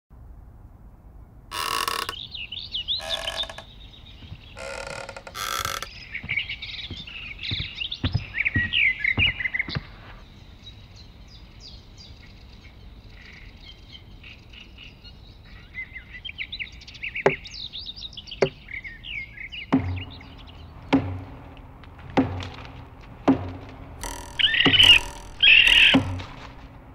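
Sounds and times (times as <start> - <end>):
birds chirping and twittering: 1.6 - 22.4, 23.5 - 26.9
sharp knocks: 19.8 - 26.8.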